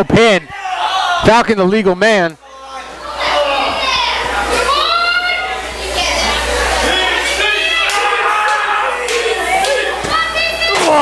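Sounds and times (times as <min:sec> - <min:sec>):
children shouting and cheering: 0:03.1 - 0:11.0.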